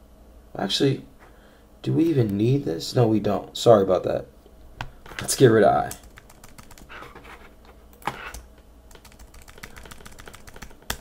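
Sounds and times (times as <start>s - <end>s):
computer keyboard typing: 5.8s - 7.0s, 8.3s - 11.0s
sharp keyboard click: 8.3s - 11.0s.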